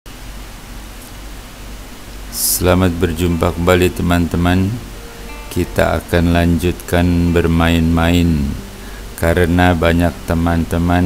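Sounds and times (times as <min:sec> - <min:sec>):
steady hiss: 0:00.1 - 0:11.0.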